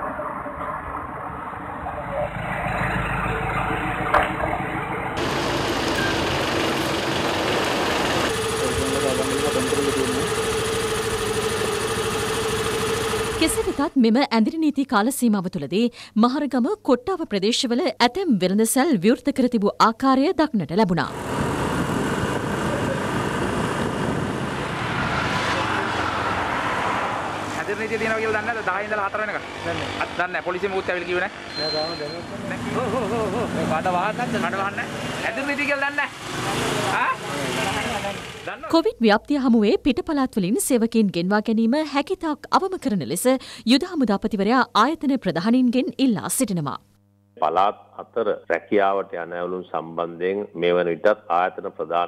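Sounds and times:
vehicle engines idling: 1.6s - 13.9s, 21.1s - 26.6s, 27.4s - 39.0s
people talking: 8.6s - 10.3s, 13.4s - 21.1s, 22.6s - 23.1s, 27.6s - 46.8s, 47.4s - 52.0s.

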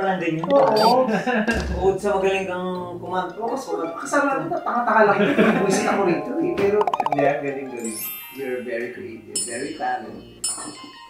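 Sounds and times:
people talking: 0.0s - 10.9s.

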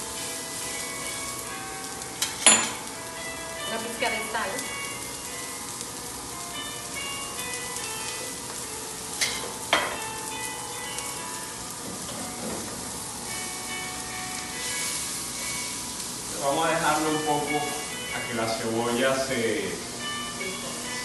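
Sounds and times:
onion sizzling in oil: 0.0s - 21.0s.

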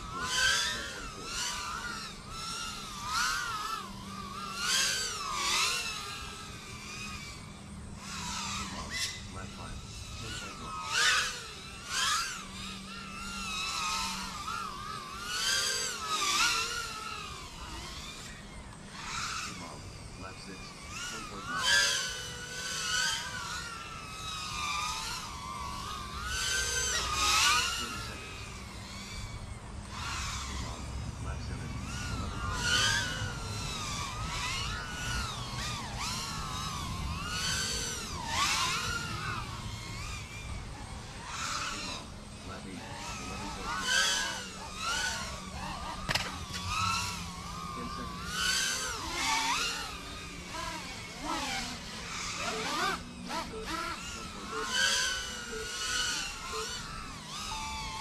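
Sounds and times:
quadcopter motors whining: 0.0s - 58.0s.

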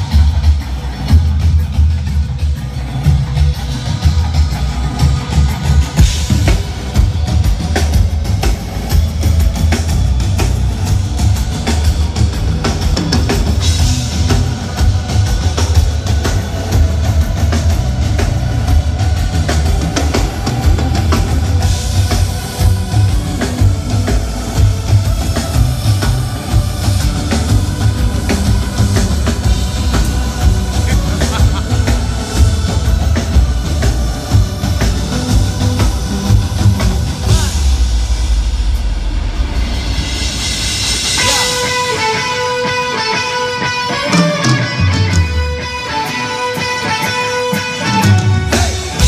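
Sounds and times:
drum kit beat: 0.0s - 49.0s
electric guitars: 0.0s - 49.0s
rock band playing live: 0.0s - 49.0s.

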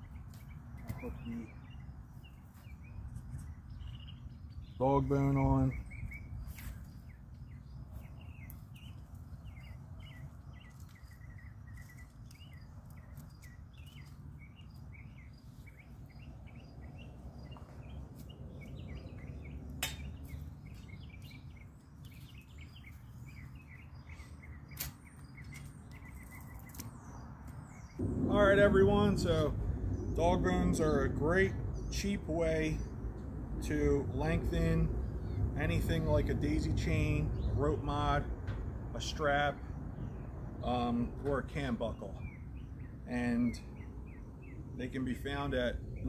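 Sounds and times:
steady low rumble: 0.0s - 26.3s, 26.9s - 46.0s
small birds chirping: 0.0s - 46.0s.

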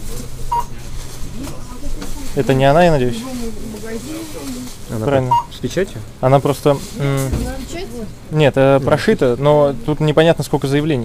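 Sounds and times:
steady low hum: 0.0s - 11.0s
short electronic beep: 5.3s - 5.5s.

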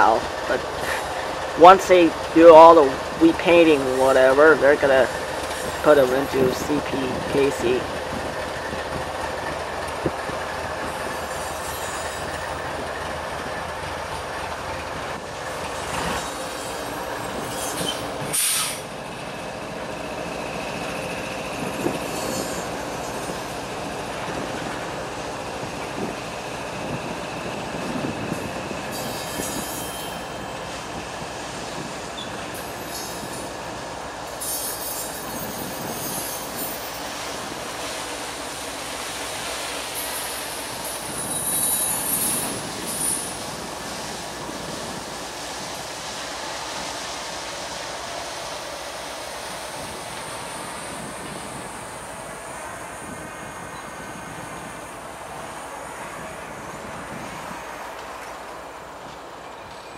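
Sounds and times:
freight train rolling past: 0.0s - 59.9s
steel wheels on rail: 0.0s - 59.9s
high wheel squeal: 10.8s - 12.7s, 15.8s - 18.9s, 21.8s - 23.5s, 28.9s - 30.6s, 32.2s - 33.7s, 34.3s - 37.4s, 39.9s - 43.4s.

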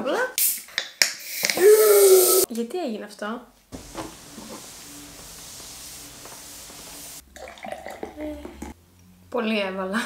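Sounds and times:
fizzy drink hissing: 1.2s - 2.5s, 3.8s - 8.4s.

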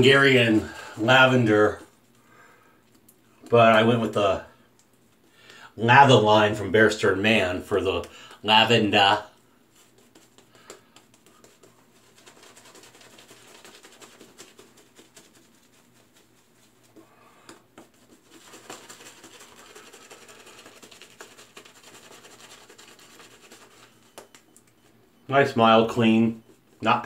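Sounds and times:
shaving brush lathering face: 9.7s - 24.9s.

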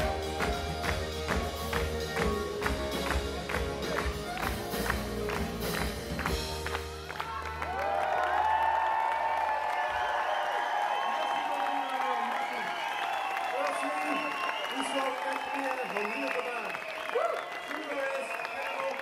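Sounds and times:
band music with quick beat: 0.0s - 7.4s
crowd cheering and applauding: 0.0s - 19.0s.

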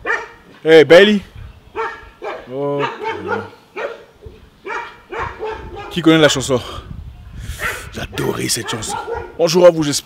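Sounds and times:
dog barking: 0.0s - 0.5s, 1.8s - 6.1s, 7.6s - 9.6s.

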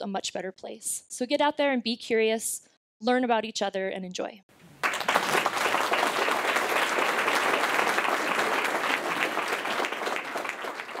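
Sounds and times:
audience applauding: 4.7s - 11.0s.

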